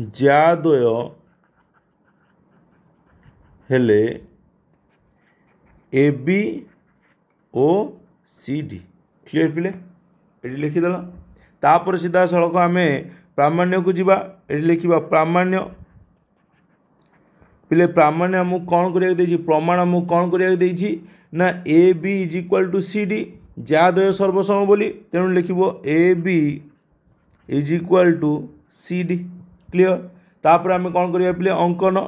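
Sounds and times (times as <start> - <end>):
stylus tapping and scratching on screen: 0.0 - 8.2, 13.6 - 20.8, 22.0 - 32.0
person speaking: 0.0 - 32.0.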